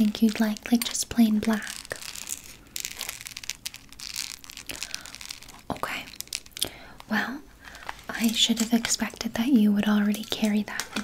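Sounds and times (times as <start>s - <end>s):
soft rustling: 0.0s - 11.0s.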